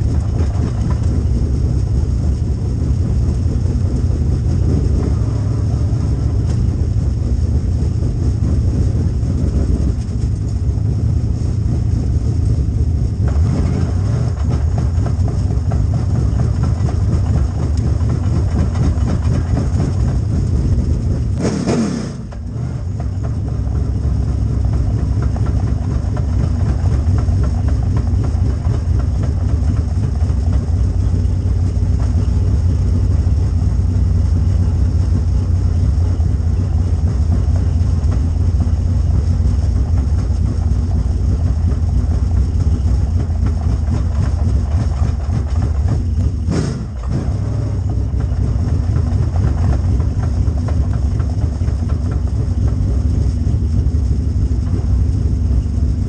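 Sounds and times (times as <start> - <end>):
race car engine rumbling: 0.0 - 56.0.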